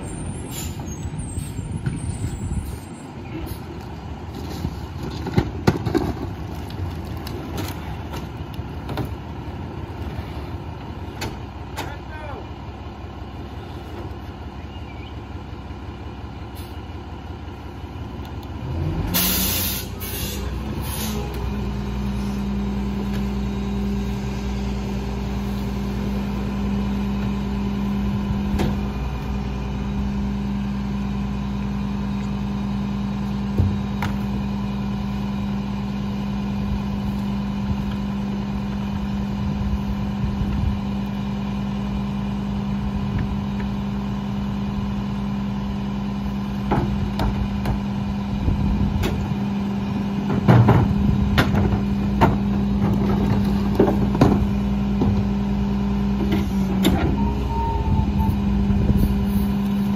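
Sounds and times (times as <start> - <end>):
garbage truck idling: 0.0 - 59.9
carts banging against hopper: 50.2 - 55.3.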